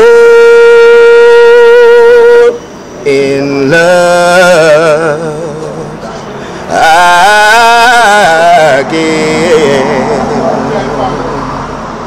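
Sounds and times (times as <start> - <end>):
man singing a long note: 0.0 - 6.1, 6.7 - 10.7.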